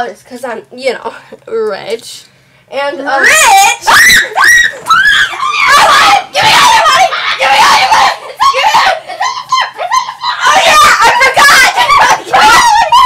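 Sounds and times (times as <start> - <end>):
girls screaming: 3.2 - 13.0
girls laughing: 3.8 - 13.0.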